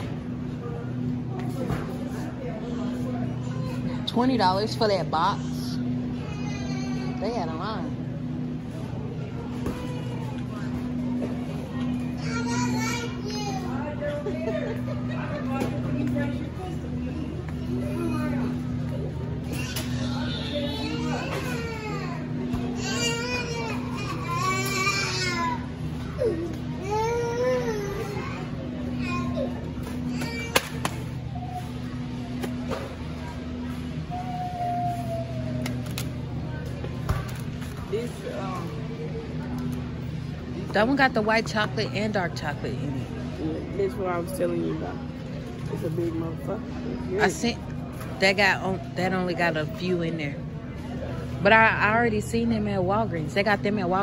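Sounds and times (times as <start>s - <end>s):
distant voices: 0.0s - 54.0s
faint store music: 0.0s - 54.0s
freezer electrical hum: 0.0s - 54.0s
indistinct high-pitched voices: 33.0s - 36.6s.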